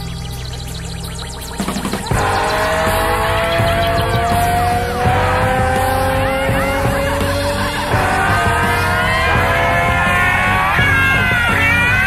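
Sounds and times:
instrumental rock jam: 0:00.0 - 0:12.0
synthesizer swooping glides: 0:00.0 - 0:12.0.

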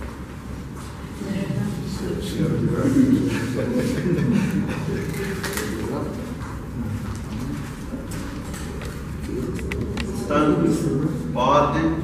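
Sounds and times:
murmuring voices: 0:01.2 - 0:11.3.

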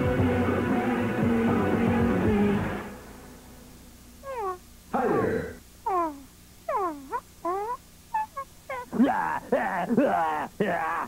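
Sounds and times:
faint hum: 0:00.0 - 0:11.0
cat meowing: 0:04.2 - 0:04.6, 0:05.9 - 0:09.0.

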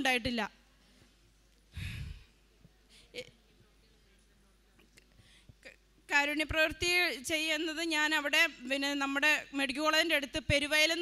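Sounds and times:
woman breathing into microphone: 0:01.7 - 0:03.2.

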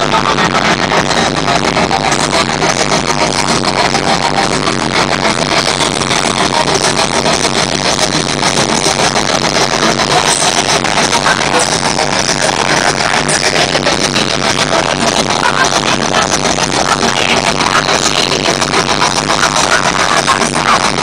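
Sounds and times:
fast heavy metal drumming: 0:00.0 - 0:21.0.

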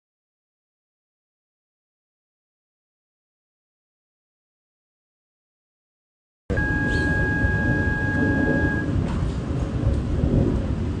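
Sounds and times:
thin steady high tone: 0:06.5 - 0:08.9
wind buffeting microphone: 0:06.6 - 0:11.0.

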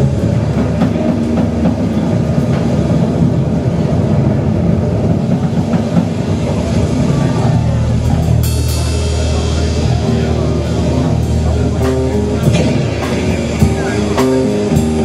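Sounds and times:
rock band bass-heavy rumble: 0:00.0 - 0:15.0.

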